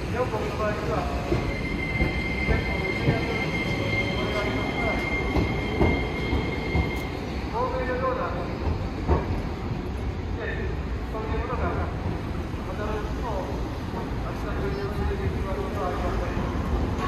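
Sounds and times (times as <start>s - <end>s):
rumble of tram and street: 0.0s - 17.0s
tram passing and pulling away: 0.0s - 17.0s.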